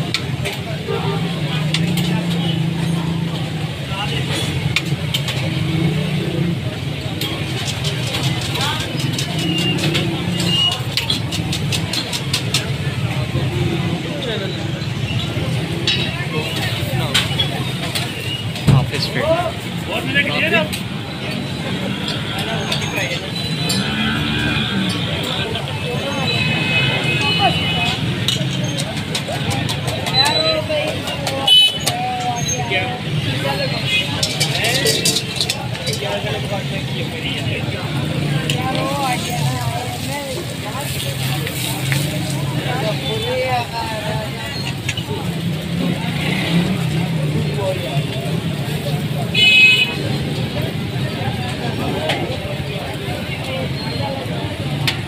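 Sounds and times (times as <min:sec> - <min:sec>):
people talking: 0:00.0 - 0:55.0
traffic noise: 0:00.0 - 0:55.0
car horns: 0:21.7 - 0:28.2, 0:31.4 - 0:31.9, 0:49.3 - 0:50.2.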